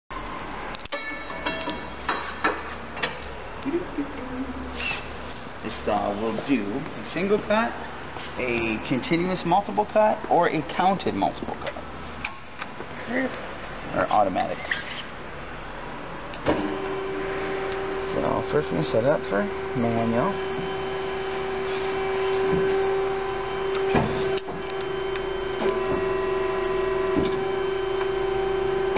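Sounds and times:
low machine hum: 3.4s - 4.8s, 16.4s - 28.9s.

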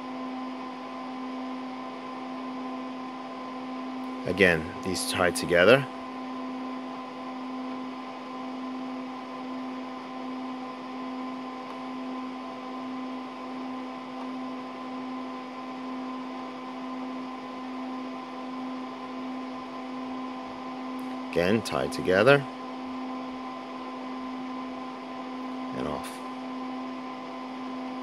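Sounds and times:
computer cooling fans whirring: 0.0s - 28.0s.

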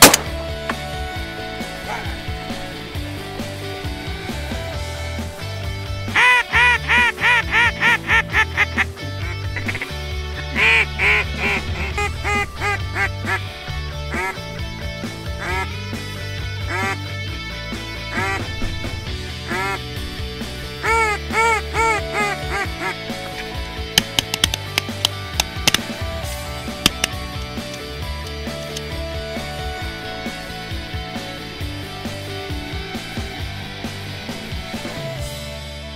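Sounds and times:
sharp cracks: 0.0s - 1.1s, 18.1s - 29.0s
rock music: 0.0s - 35.9s
duck call quacks: 6.1s - 13.5s, 14.1s - 14.4s, 15.4s - 15.8s, 16.7s - 17.0s, 18.1s - 18.5s, 19.5s - 19.9s, 20.8s - 23.1s.

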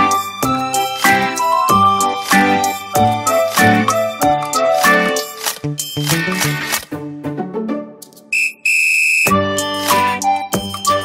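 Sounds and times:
background music: 0.0s - 8.5s, 9.3s - 11.0s
high steady whistle tone: 8.3s - 9.4s.

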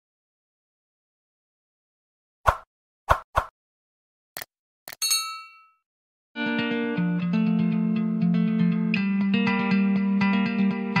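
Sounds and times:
bell ding sound effect: 4.9s - 5.8s
plucked guitar music: 6.4s - 11.0s.

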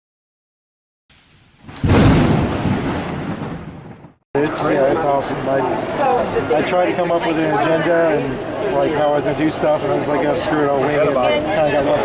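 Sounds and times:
loud deep boom: 1.8s - 4.2s.

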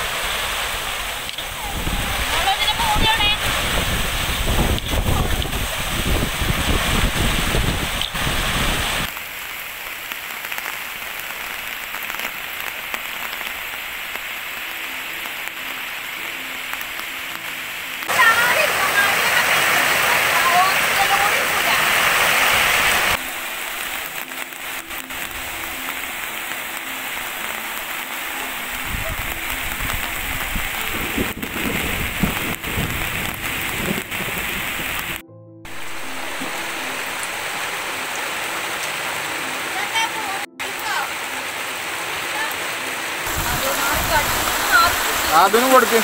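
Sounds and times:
heavy rain falling: 0.0s - 46.0s.

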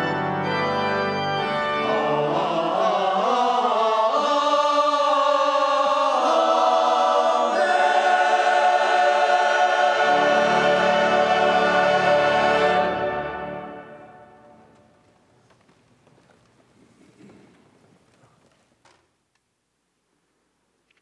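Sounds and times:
choir singing sustained chords: 0.0s - 14.8s
low accompanying notes: 6.0s - 15.0s.

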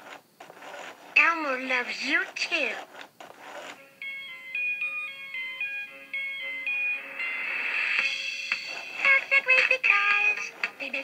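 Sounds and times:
toy playing beeping electronic tune: 3.8s - 9.3s.

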